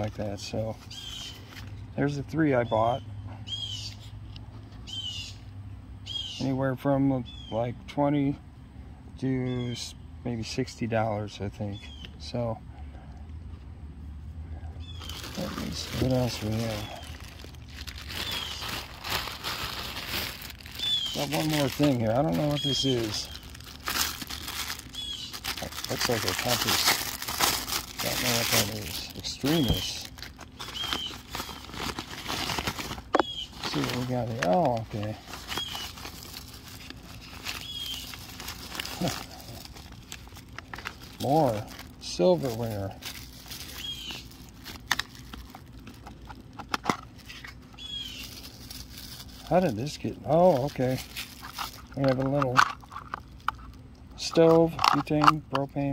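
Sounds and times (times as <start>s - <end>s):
bird chirp: 0.8s - 4.2s, 4.8s - 7.8s, 11.6s - 12.4s, 14.5s - 17.4s, 18.1s - 18.9s, 20.7s - 23.6s, 24.4s - 25.4s, 29.4s - 31.9s, 33.2s - 34.2s, 35.5s - 36.0s, 37.5s - 38.2s, 43.7s - 44.3s, 47.7s - 48.4s
plastic packaging crinkling: 15.0s - 55.3s.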